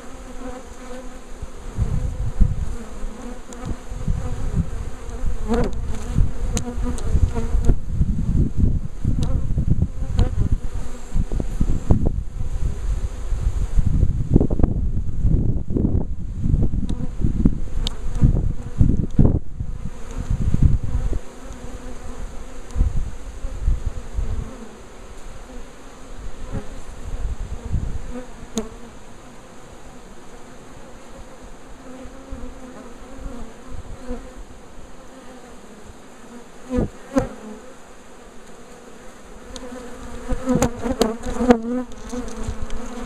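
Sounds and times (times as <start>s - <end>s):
honeybees humming: 0.0s - 7.9s, 16.9s - 43.0s
low rumbling microphone noise: 1.6s - 3.0s, 3.7s - 21.3s, 26.1s - 28.2s.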